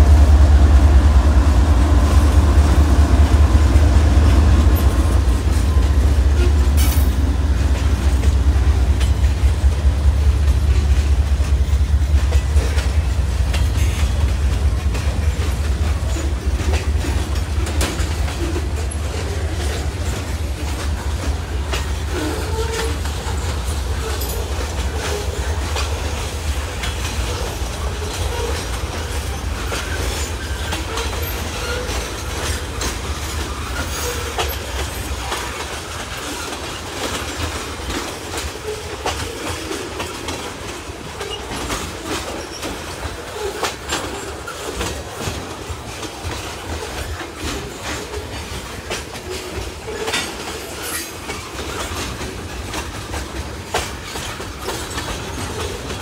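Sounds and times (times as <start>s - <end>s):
steel wheels rumbling on rail: 0.0s - 56.0s
wheels clacking over rail joints: 0.0s - 56.0s.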